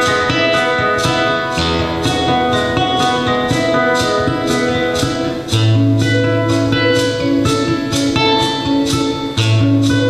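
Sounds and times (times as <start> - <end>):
acoustic guitar playing: 0.0 - 10.0.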